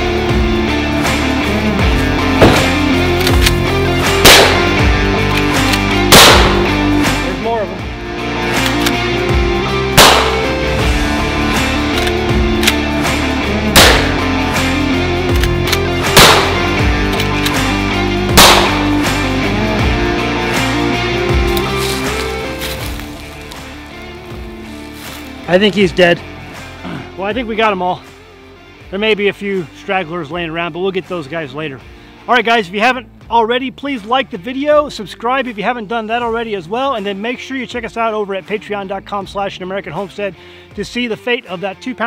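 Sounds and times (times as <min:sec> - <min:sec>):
background music: 0:00.0 - 0:42.0
rifle shots: 0:02.4 - 0:03.6, 0:04.2 - 0:04.8, 0:05.7 - 0:06.8, 0:10.0 - 0:10.5, 0:13.8 - 0:14.2, 0:15.3 - 0:17.5, 0:18.3 - 0:18.9.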